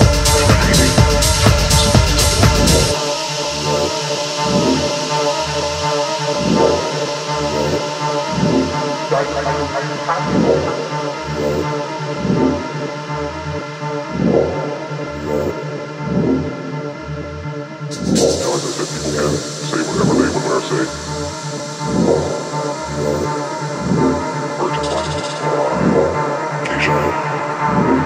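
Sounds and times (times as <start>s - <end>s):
sustained synth chords: 0.0s - 28.0s.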